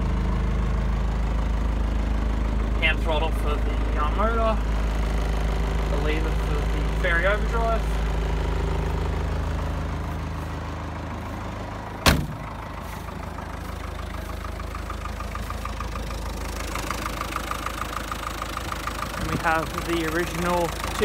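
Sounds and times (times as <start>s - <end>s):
diesel engine idling: 0.0s - 21.0s
sharp bang: 12.0s - 12.5s.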